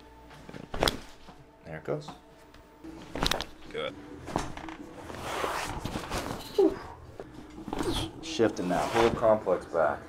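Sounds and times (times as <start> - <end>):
clothing rustling: 4.2 - 8.1.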